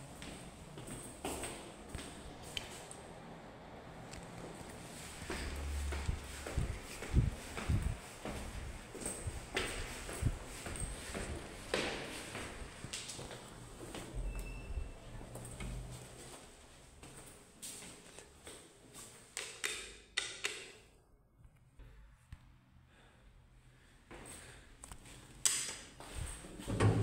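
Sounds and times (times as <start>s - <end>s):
footsteps on stairs: 5.1s - 14.1s.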